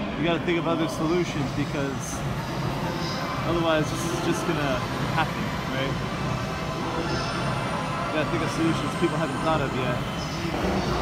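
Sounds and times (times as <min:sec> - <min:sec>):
busy railway station din: 0:00.0 - 0:11.0.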